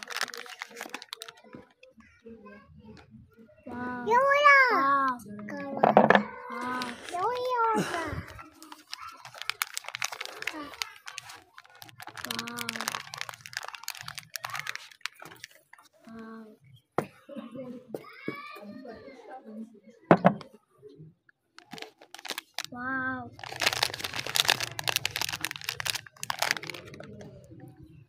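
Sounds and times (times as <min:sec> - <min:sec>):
soap wrapper crinkling: 0:00.0 - 0:01.9, 0:08.4 - 0:16.0, 0:21.6 - 0:22.8, 0:23.4 - 0:27.4.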